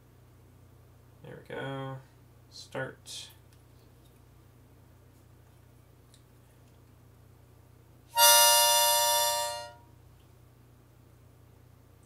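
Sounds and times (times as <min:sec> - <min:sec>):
harmonica held note: 0:08.2 - 0:09.8.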